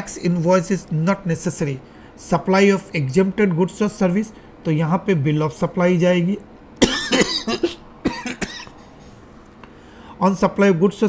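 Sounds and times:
man coughing: 6.8s - 8.8s.

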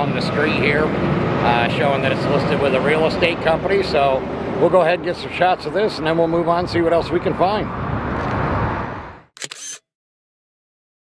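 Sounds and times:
camera shutter click: 9.4s - 9.9s.

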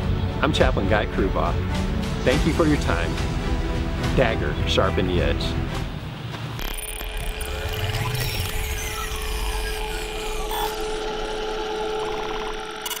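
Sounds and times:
dense mechanical whirring: 6.6s - 13.0s
held tone: 6.6s - 13.0s.

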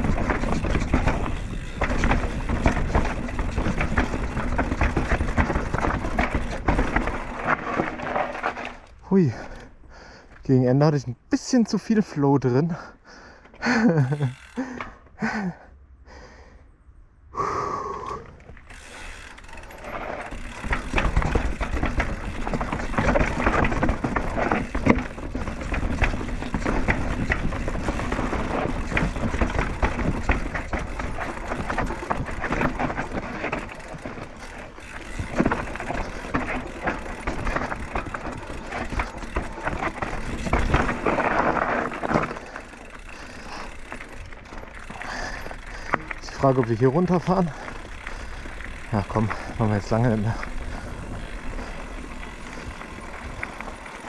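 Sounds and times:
freewheel ratcheting: 0.0s - 8.4s, 18.6s - 54.0s
mountain bike rattling over trail: 0.0s - 15.5s, 18.4s - 54.0s.

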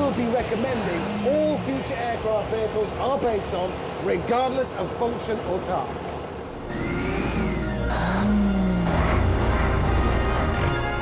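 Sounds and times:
heavy vehicle engine revving: 0.0s - 11.0s.

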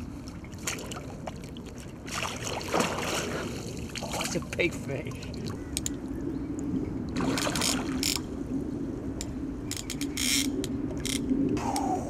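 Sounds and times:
splashing or rustling: 0.3s - 5.6s, 7.2s - 8.0s.

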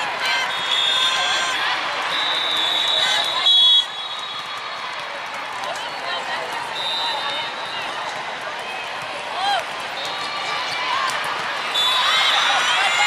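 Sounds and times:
crowd chatter: 0.0s - 13.0s
whistle blasts: 0.5s - 1.3s, 2.1s - 4.5s, 11.7s - 12.2s.

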